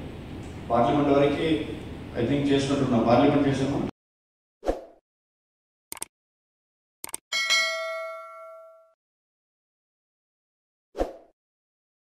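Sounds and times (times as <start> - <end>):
bright bell ding: 7.3 - 9.0.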